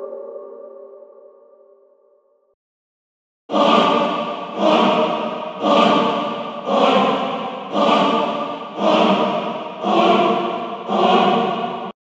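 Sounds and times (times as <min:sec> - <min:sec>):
choir singing sustained chords: 0:03.5 - 0:12.0.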